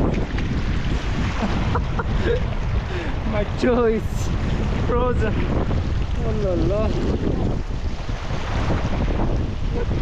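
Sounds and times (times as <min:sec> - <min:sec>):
river water over stones: 0:00.0 - 0:10.0
wind buffeting microphone: 0:00.0 - 0:10.0.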